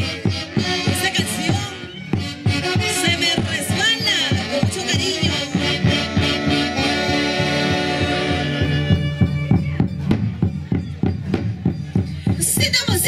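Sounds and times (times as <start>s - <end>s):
saxophones and trumpets playing: 0.0s - 9.8s
steady drum beat: 0.0s - 13.0s.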